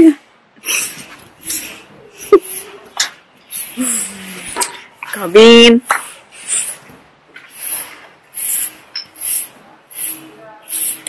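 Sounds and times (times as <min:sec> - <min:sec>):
woman laughing breathily: 0:00.6 - 0:02.9.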